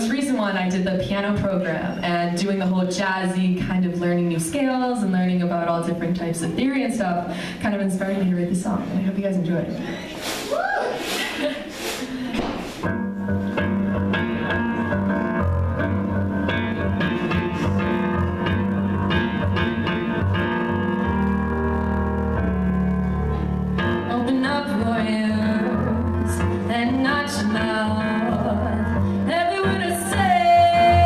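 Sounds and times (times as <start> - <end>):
keyboard chords over bass line: 12.9 - 31.0.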